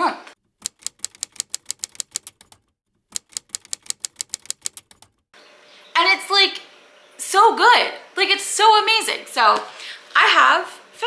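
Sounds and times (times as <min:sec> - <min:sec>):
typewriter keys striking: 0:00.6 - 0:05.2.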